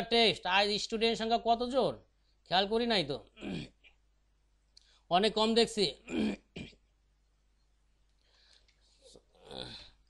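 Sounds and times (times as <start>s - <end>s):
person clearing throat: 3.4s - 4.0s, 6.0s - 6.9s.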